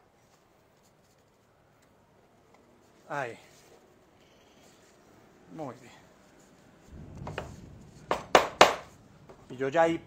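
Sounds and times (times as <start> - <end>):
wood knocking on wood: 7.0 - 8.9.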